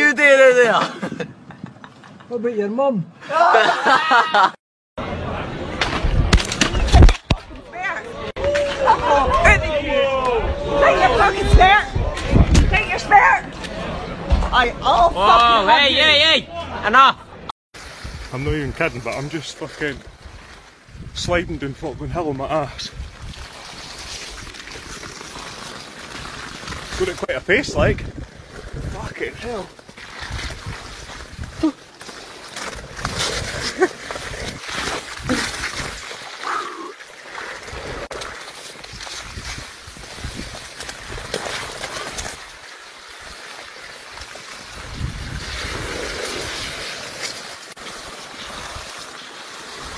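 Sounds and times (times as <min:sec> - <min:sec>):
wind rumbling on microphone: 0:08.4 - 0:14.6, 0:17.8 - 0:19.0, 0:20.0 - 0:24.6, 0:26.6 - 0:31.8, 0:37.7 - 0:42.5, 0:44.1 - 0:47.1
wind buffeting microphone: 0:09.1 - 0:13.1, 0:27.3 - 0:29.6, 0:44.7 - 0:46.7
person sliding down snow: 0:22.9 - 0:49.9.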